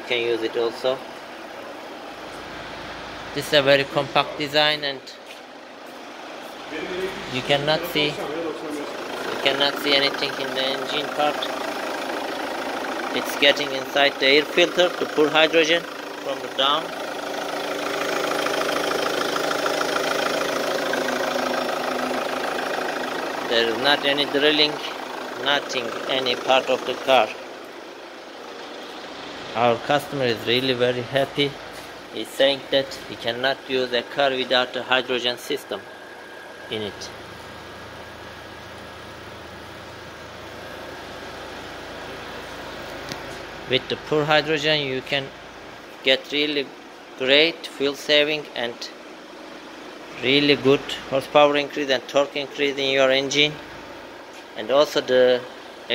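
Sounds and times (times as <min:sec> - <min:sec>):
diesel engine idling: 0:00.0 - 0:55.9.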